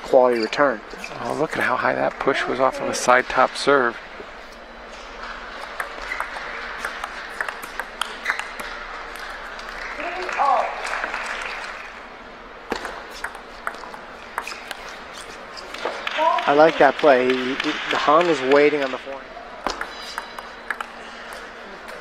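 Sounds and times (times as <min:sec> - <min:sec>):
table tennis ball clicks: 0:05.7 - 0:09.8, 0:12.7 - 0:16.1, 0:19.6 - 0:22.0
crowd applause: 0:09.1 - 0:12.0, 0:15.7 - 0:19.0.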